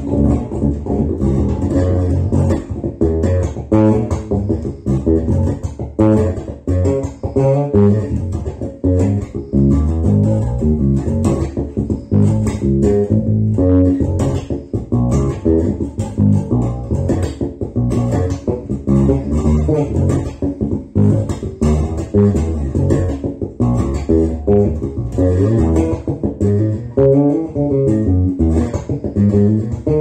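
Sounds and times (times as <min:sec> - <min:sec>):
electric bass guitar plucked: 0:00.0 - 0:30.0.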